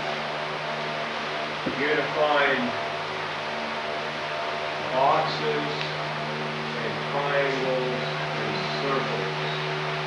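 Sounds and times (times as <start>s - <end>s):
background hum and hiss: 0.0s - 10.0s
constant low tones: 0.0s - 10.0s.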